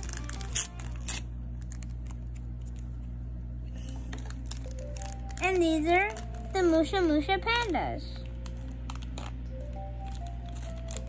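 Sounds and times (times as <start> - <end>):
paper and tape crackling: 0.0 - 11.0
quiet background music: 0.0 - 11.0.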